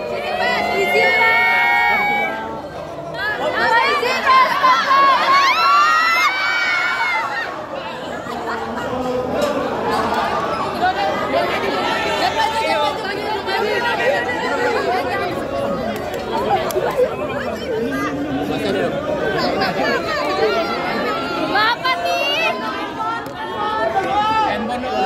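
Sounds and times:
crowd of reporters talking: 0.0 - 25.0.

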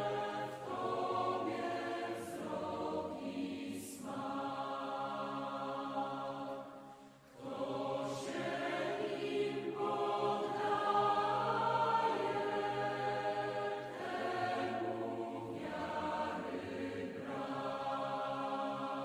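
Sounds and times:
group singing a hymn: 0.0 - 19.0.

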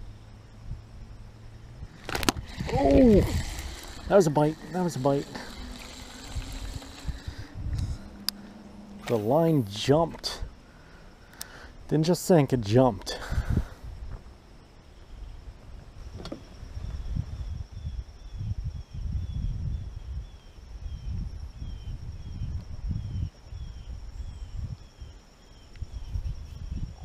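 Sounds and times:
low rumbling: 0.0 - 11.9
faint high hum: 0.0 - 27.0.

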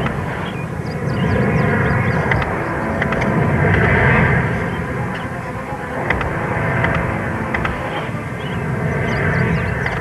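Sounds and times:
low rushing roar: 0.0 - 10.0.

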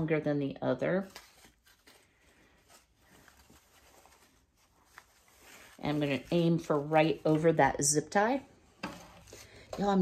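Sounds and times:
fabric ribbon rustling: 0.7 - 10.0.

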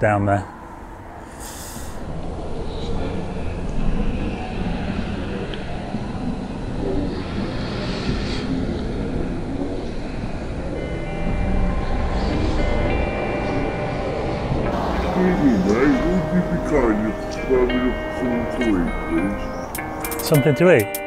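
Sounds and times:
low rumbling street noise: 0.0 - 20.8
music with long held notes: 10.0 - 21.0.

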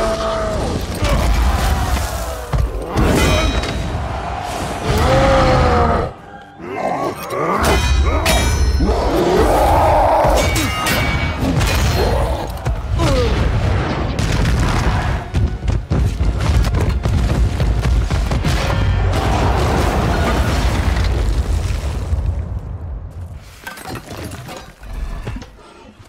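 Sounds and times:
film score music: 0.0 - 21.4.

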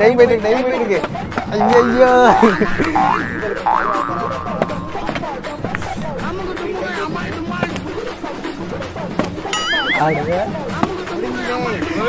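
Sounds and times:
cartoon pitch sliding sound effect: 1.6 - 5.1, 9.5 - 10.3.

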